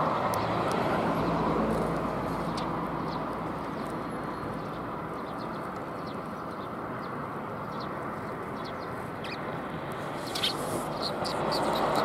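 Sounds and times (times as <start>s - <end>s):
road traffic hum: 0.0s - 12.0s
sparrows chirping: 1.2s - 12.0s.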